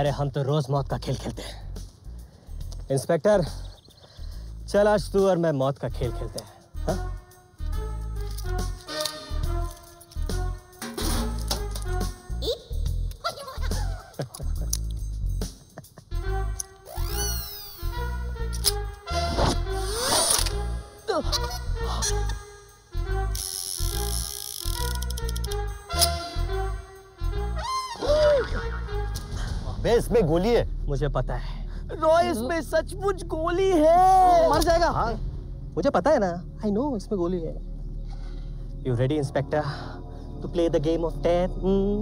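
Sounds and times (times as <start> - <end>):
playful comic film music: 4.7 - 31.1.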